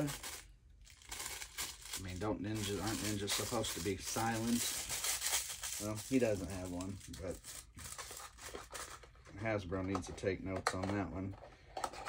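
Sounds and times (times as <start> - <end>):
plastic packaging crinkling: 0.0 - 9.2.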